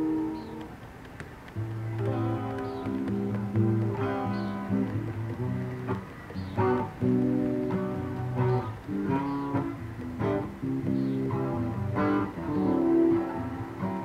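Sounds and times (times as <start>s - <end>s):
acoustic guitar strumming: 0.0s - 14.0s.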